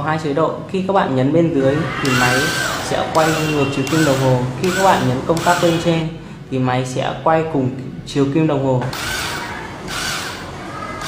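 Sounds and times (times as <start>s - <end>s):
cordless screwdriver whirring: 2.0s - 5.9s, 8.9s - 10.5s.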